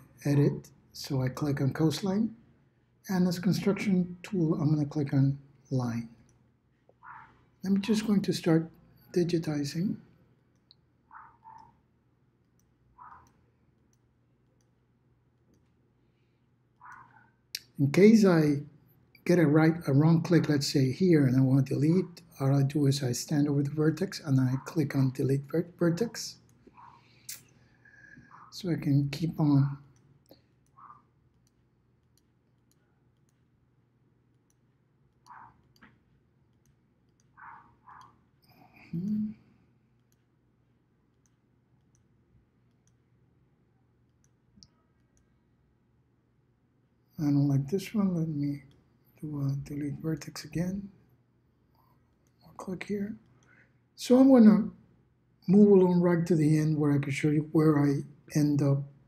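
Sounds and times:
computer mouse clicks: 0:10.5 - 0:11.8, 0:12.4 - 0:14.8, 0:15.4 - 0:15.8, 0:16.8 - 0:17.7, 0:29.9 - 0:33.5, 0:34.3 - 0:38.2, 0:39.9 - 0:40.4, 0:41.1 - 0:43.1, 0:44.0 - 0:45.4
faint computer mouse clicks: 0:34.3 - 0:38.2, 0:41.1 - 0:43.0.

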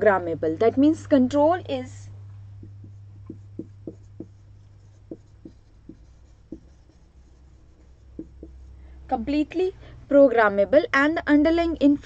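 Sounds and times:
steady low hum: 0:00.0 - 0:12.0
marker pen writing on whiteboard: 0:02.4 - 0:08.8.

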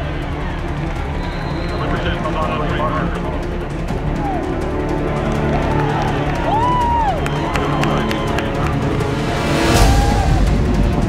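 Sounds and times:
background music: 0:00.0 - 0:11.0
crowd noise: 0:00.0 - 0:11.0
shouted voices: 0:09.7 - 0:10.6.

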